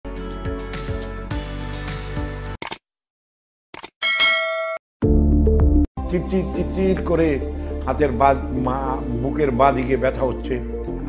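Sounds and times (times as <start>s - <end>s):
bright bell-like ding: 4.0s - 4.8s.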